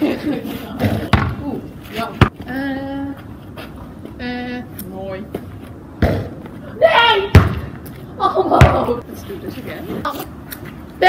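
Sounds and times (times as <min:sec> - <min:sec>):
basketball hitting hoop and ground: 0:00.8 - 0:02.5, 0:05.2 - 0:09.0.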